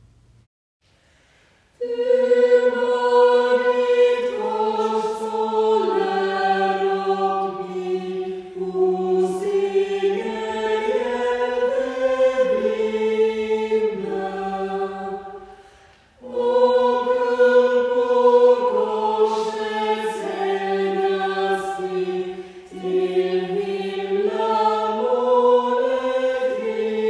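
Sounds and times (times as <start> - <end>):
small choir singing: 1.8 - 27.0.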